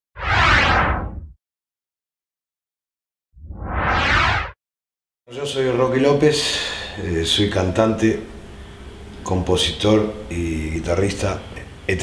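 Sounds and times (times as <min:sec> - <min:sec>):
whoosh sound effect: 0:03.4 - 0:04.6.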